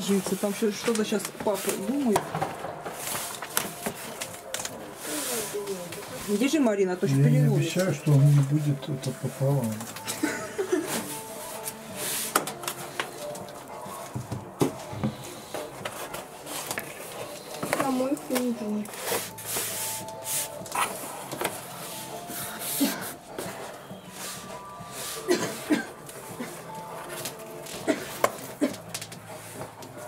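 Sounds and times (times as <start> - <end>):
faint music: 0.0 - 30.0.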